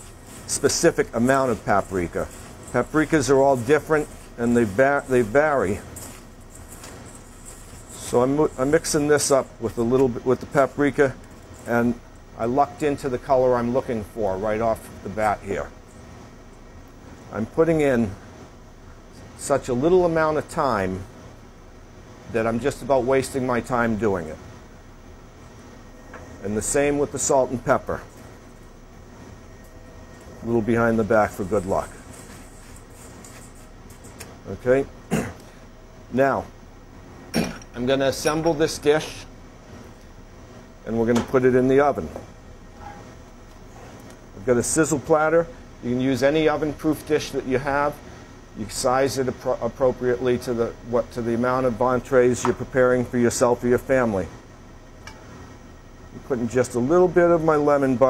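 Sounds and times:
breadcrumbs rustling in a bowl: 0.0s - 9.5s
steady low hiss: 0.0s - 58.0s.

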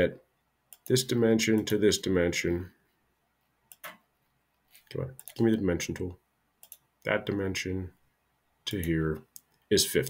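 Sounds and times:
computer mouse clicks: 3.7s - 4.0s, 5.1s - 5.6s, 6.6s - 6.9s.

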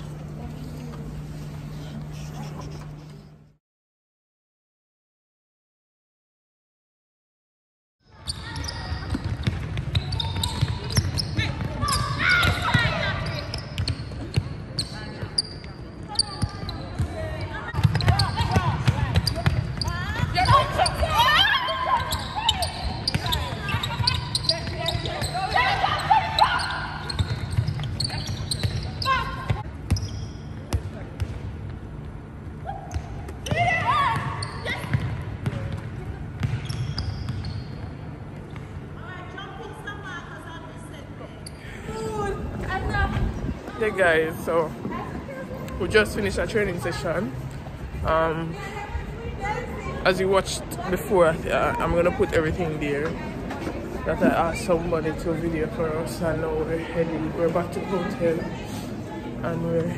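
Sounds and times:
shoe squeaks: 8.1s - 30.7s, 32.9s - 35.2s, 36.4s - 38.7s
balls bouncing on wooden court: 8.5s - 21.2s, 26.4s - 32.2s, 32.9s - 38.8s
players shouting calls: 17.1s - 27.4s.

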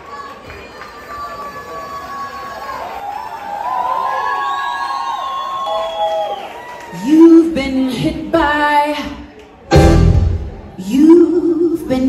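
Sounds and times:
audience cheering and whooping: 0.1s - 7.2s.

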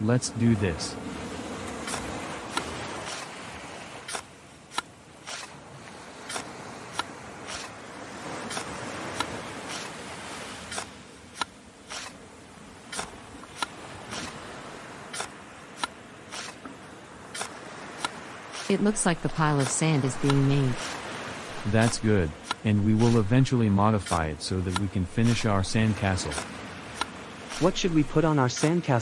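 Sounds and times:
shovels digging into sand: 1.8s - 29.0s.

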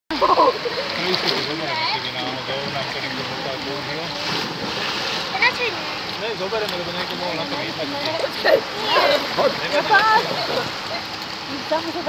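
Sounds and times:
people's voices and calls: 0.1s - 12.0s
pool water splashing: 0.1s - 12.0s.

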